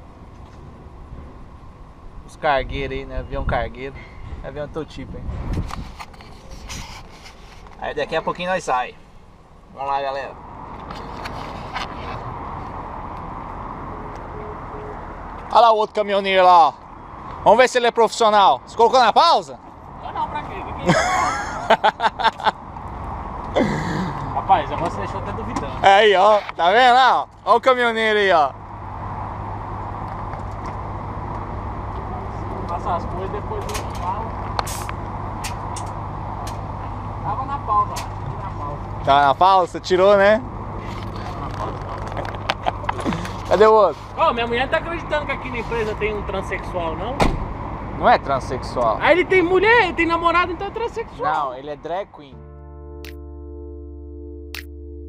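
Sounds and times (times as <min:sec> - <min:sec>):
diesel trucks idling rumble: 0:20.7 - 0:51.8.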